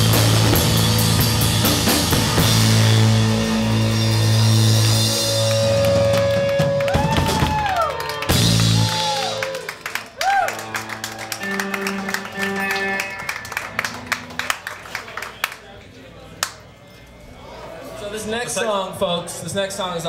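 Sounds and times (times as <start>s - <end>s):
live rock band playing: 0.0s - 9.4s, 10.5s - 14.8s.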